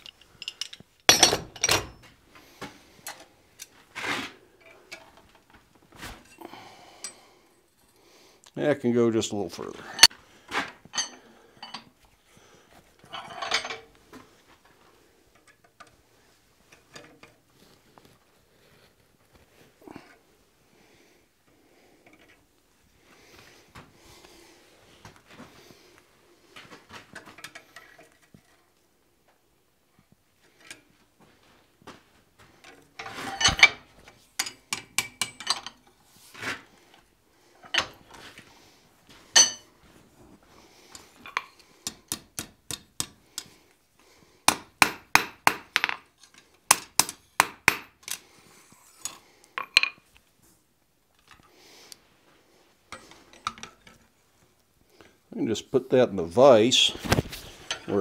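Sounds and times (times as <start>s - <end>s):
hammer striking iron on anvil: 34.7s - 35.5s, 44.5s - 46.0s, 46.7s - 47.9s.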